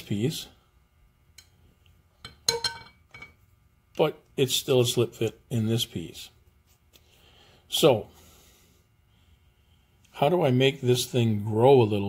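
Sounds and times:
steel parts clinking: 0:02.2 - 0:03.4.

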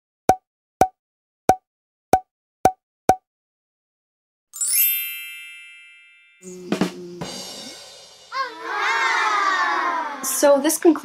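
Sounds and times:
bright shimmering chime: 0:04.6 - 0:06.6.

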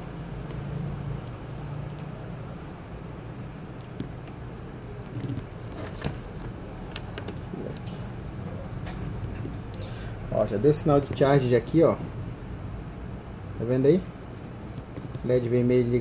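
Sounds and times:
low background hum: 0:00.0 - 0:16.0
hands tapping a laptop: 0:14.7 - 0:15.3.

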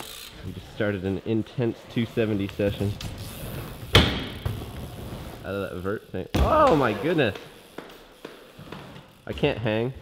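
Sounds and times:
bike hitting ramp bang: 0:03.8 - 0:05.3, 0:06.3 - 0:07.2.

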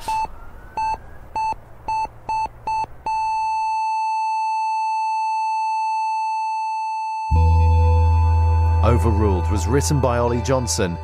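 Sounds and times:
heart monitor beeping: 0:00.0 - 0:07.5
heart monitor flatline tone: 0:00.0 - 0:09.0.

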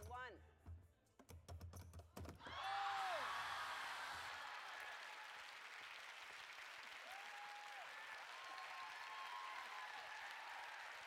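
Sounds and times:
audience applauding: 0:02.5 - 0:11.0.

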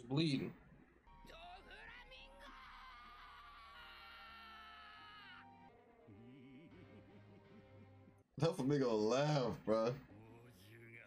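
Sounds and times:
high-pitched held shout: 0:02.4 - 0:05.6.

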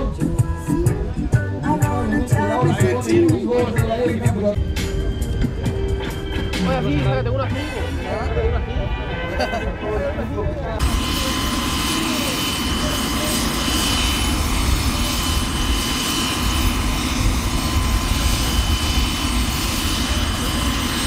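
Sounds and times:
helicopter rotor rumble: 0:00.0 - 0:21.0
helicopter turbine whine: 0:00.0 - 0:21.0.

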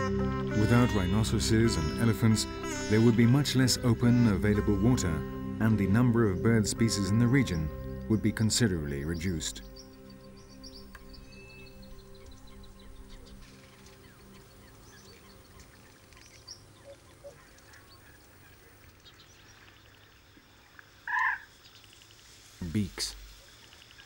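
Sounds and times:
soft steady music: 0:00.0 - 0:18.4
faint ticks: 0:13.4 - 0:21.0, 0:21.6 - 0:22.4
bird call: 0:21.1 - 0:22.2.

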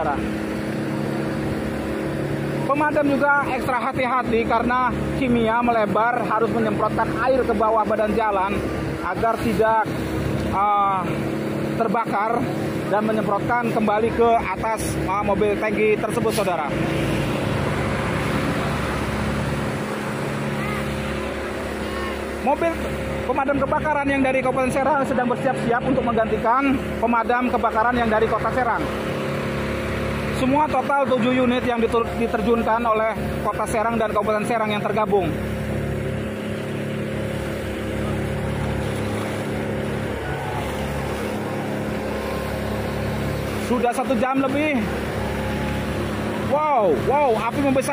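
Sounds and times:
fire engine motor running: 0:00.0 - 0:47.9
water spray rushing: 0:14.4 - 0:23.3, 0:26.7 - 0:47.9.

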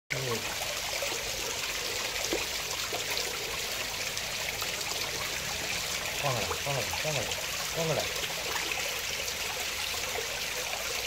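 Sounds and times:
pond water trickling and splashing: 0:00.1 - 0:11.0.

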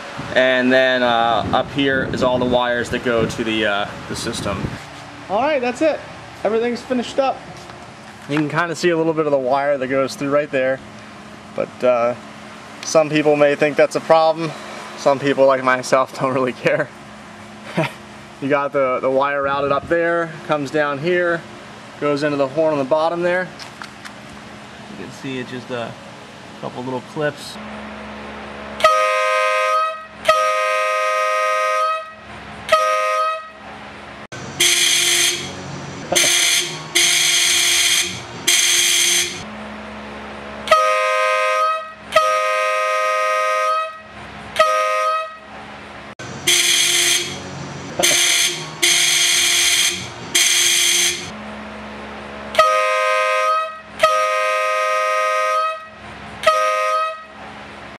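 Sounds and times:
air horn blare: 0:28.8 - 0:33.6, 0:34.6 - 0:39.4, 0:40.6 - 0:45.5, 0:46.4 - 0:51.4, 0:52.5 - 0:57.4
two-note electric horn beep: 0:28.8 - 0:33.6, 0:34.6 - 0:35.6, 0:36.2 - 0:39.4, 0:40.7 - 0:45.4, 0:46.5 - 0:47.4, 0:48.0 - 0:51.3, 0:52.6 - 0:57.3.

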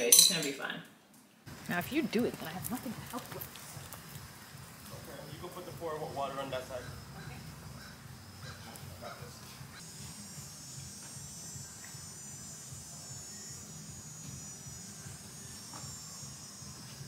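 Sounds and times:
continuous low hum: 0:00.0 - 0:17.0
high steady buzzing: 0:05.5 - 0:17.0.

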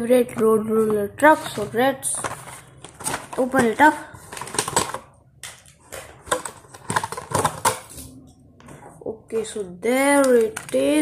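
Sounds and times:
plastic packaging crackling: 0:01.4 - 0:08.1, 0:10.1 - 0:11.0.

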